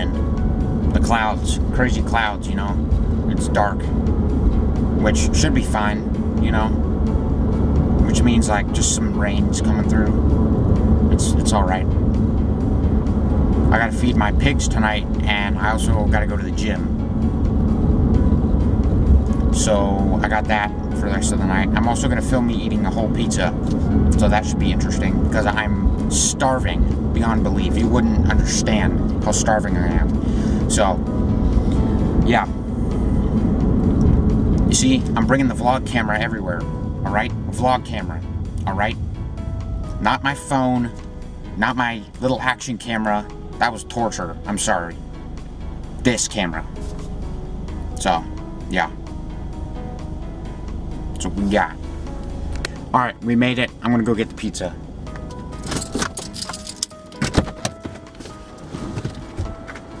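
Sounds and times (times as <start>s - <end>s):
background music with held notes: 0.0s - 60.0s
car engine and tyre rumble: 0.0s - 60.0s
clicks and thumps in a car: 55.1s - 59.9s.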